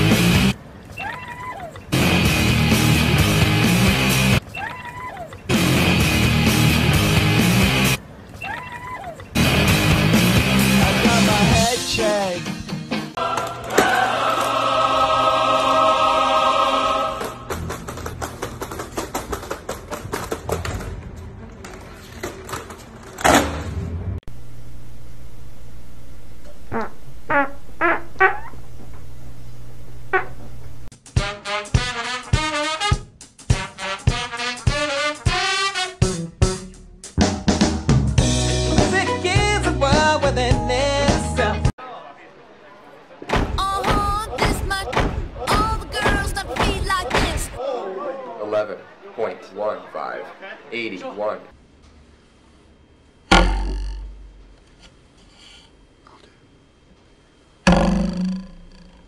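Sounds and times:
steady low hum: 0:24.3 - 0:30.9
high-pitched squeaky call: 0:26.7 - 0:28.6
metal ruler twanging: 0:53.3 - 0:54.4, 0:57.7 - 0:59.0.

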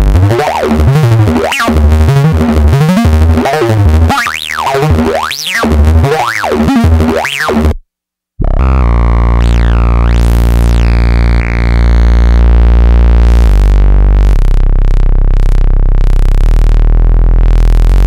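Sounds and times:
held low synth note with filter sweep: 0:00.0 - 0:07.8, 0:08.4 - 0:18.0
synthesizer bass line: 0:00.0 - 0:07.8, 0:08.4 - 0:18.0.

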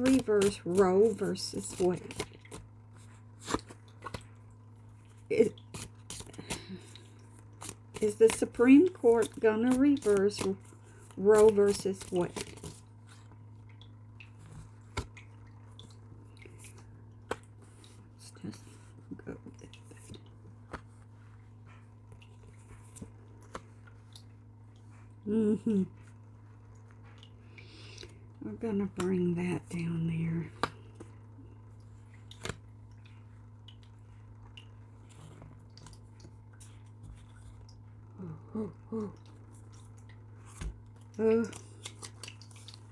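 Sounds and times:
steady low hum: 0:00.0 - 0:42.9
cards rustling: 0:05.6 - 0:13.2, 0:41.4 - 0:42.9.

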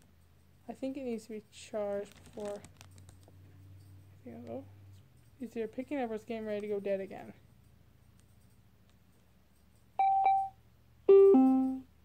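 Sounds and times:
short high beeps: 0:10.0 - 0:11.8
falling two-note chime: 0:11.1 - 0:11.8.

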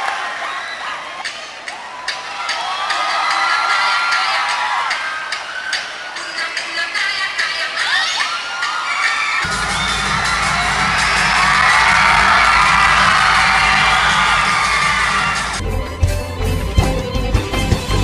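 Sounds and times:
crowd cheering and shouting: 0:00.0 - 0:15.7
music with heavy low beat: 0:09.5 - 0:18.0.

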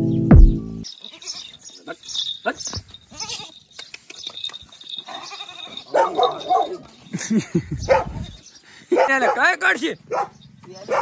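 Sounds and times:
music with heavy beat: 0:00.3 - 0:00.6
goat kid bleating: 0:01.0 - 0:01.6, 0:03.1 - 0:03.6, 0:05.1 - 0:05.9.

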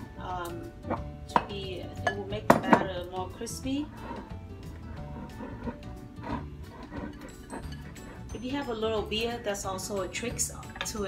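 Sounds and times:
soft instrumental music: 0:00.0 - 0:11.0
utensil stirring batter in bowl: 0:02.5 - 0:11.0.

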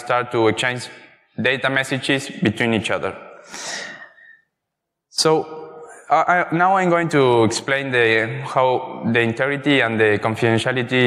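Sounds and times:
man's sharp intake of breath: 0:03.4 - 0:04.4.

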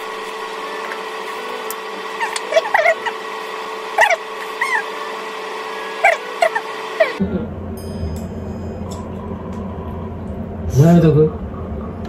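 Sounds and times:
low room hum: 0:00.0 - 0:12.0
steady background tone: 0:00.0 - 0:12.0.

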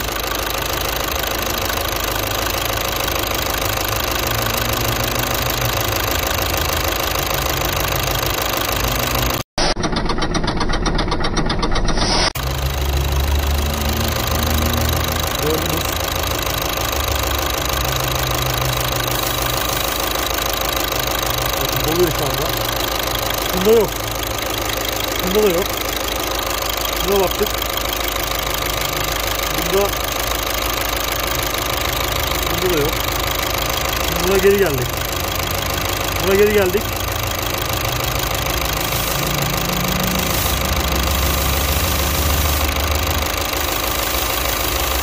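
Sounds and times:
diesel engine idling: 0:00.0 - 0:45.0.

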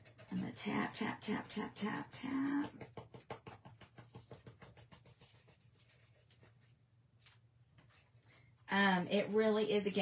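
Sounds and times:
rapid light tapping on napkin: 0:00.0 - 0:06.7.

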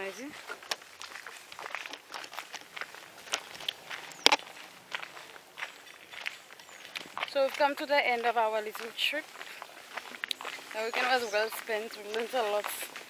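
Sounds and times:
footsteps walking outdoors: 0:00.0 - 0:13.0.

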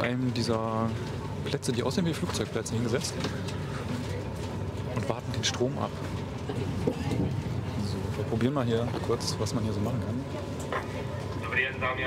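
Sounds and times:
faint passenger voices: 0:00.0 - 0:12.0
train running rumble: 0:00.0 - 0:12.0.

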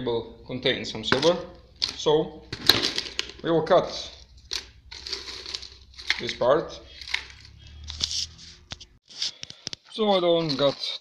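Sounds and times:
plastic pieces rustling and crinkling: 0:01.8 - 0:03.5, 0:04.2 - 0:08.5, 0:09.1 - 0:11.0.

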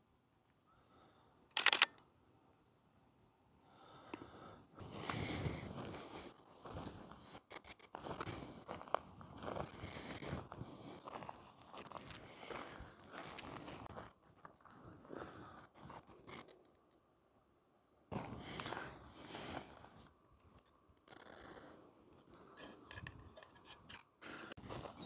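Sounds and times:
footsteps crunching through dry grass: 0:04.8 - 0:16.3, 0:24.6 - 0:25.0.

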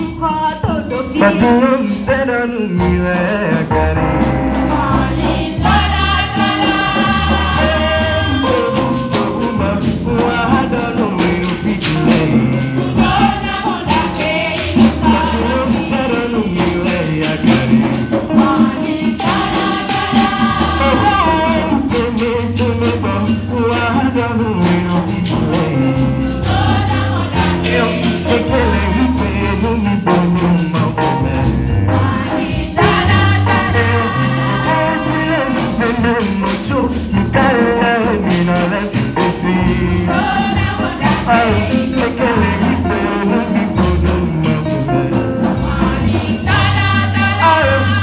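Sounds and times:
quick percussion beat: 0:00.0 - 0:48.0
women's choir singing: 0:04.6 - 0:09.5, 0:12.6 - 0:16.5, 0:18.3 - 0:21.8, 0:26.4 - 0:29.2, 0:32.0 - 0:35.8, 0:40.0 - 0:43.6, 0:45.6 - 0:48.0
low bass line: 0:20.6 - 0:40.2.

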